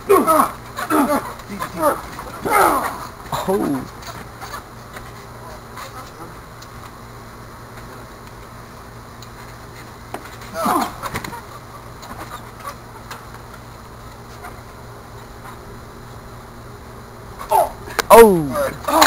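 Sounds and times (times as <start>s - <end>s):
steady low hum: 0.0s - 19.0s
person's short cry: 10.5s - 11.0s.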